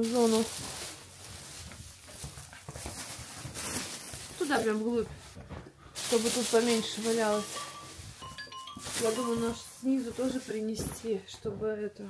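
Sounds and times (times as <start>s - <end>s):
plastic bags rustling: 0.0s - 11.6s.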